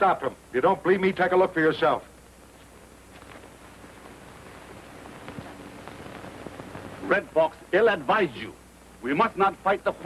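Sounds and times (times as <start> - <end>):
steady film soundtrack hiss: 0.0 - 10.0
faint clicks and crackles: 2.5 - 7.0.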